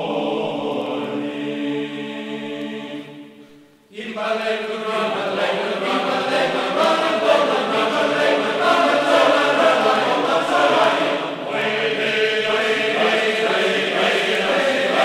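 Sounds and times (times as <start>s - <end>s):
choir singing: 0.0s - 15.0s.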